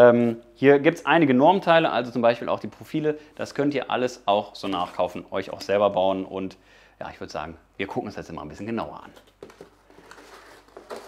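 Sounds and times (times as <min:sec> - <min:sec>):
cardboard rustling: 0:09.2 - 0:11.0.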